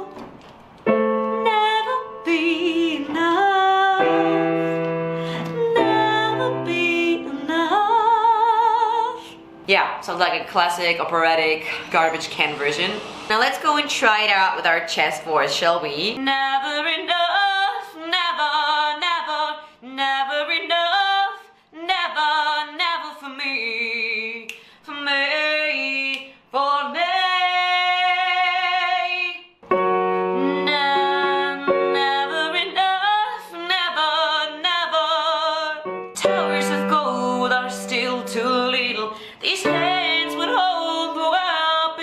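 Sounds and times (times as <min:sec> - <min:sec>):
woman singing: 0:00.0 - 0:00.2, 0:01.2 - 0:09.5, 0:15.6 - 0:29.5, 0:30.2 - 0:42.0.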